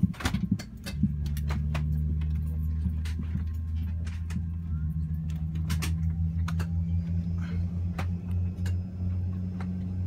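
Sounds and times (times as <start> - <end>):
aircraft cabin drone: 0.0 - 10.0.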